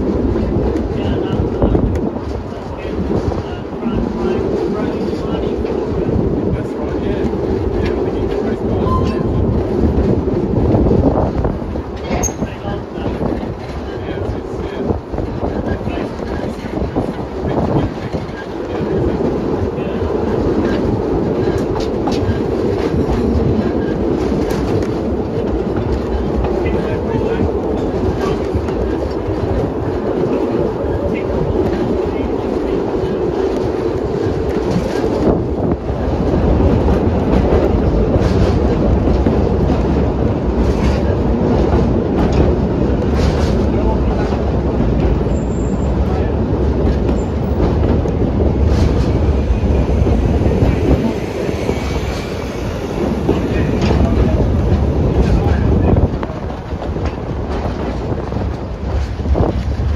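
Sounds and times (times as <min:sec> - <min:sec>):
train running gear rumble: 0:00.0 - 0:59.9
wheels clicking over rail joints: 0:00.0 - 0:59.9.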